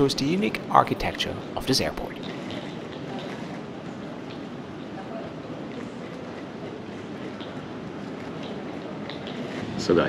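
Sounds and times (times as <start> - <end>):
terminal rumble and hiss: 0.0 - 10.0.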